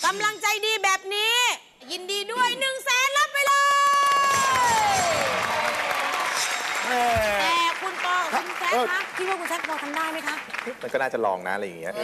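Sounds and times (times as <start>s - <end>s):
audience applauding and cheering: 3.7s - 11.4s.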